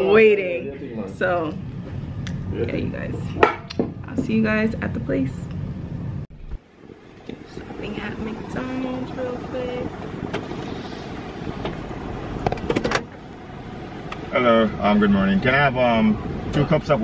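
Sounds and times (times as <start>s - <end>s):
car engine rumble inside cabin: 1.6s - 17.0s.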